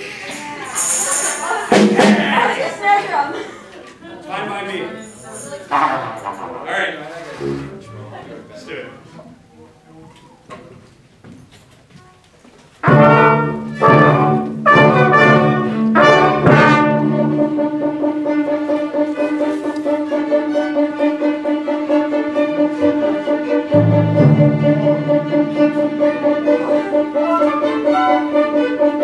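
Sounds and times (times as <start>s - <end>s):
orchestra with brass and strings: 7.3s - 8.2s, 12.8s - 29.0s.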